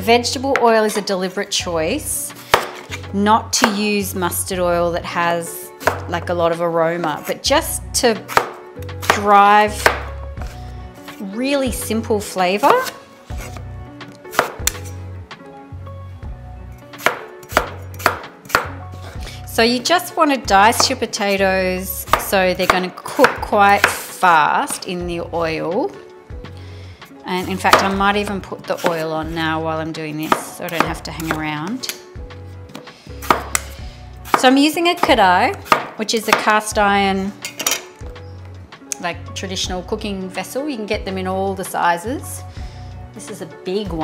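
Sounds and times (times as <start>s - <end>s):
quiet background music: 0.0s - 44.0s
knife dicing potatoes on board: 2.5s - 2.9s, 14.3s - 14.9s, 17.0s - 18.8s, 22.1s - 24.0s, 30.2s - 31.4s, 33.2s - 36.5s.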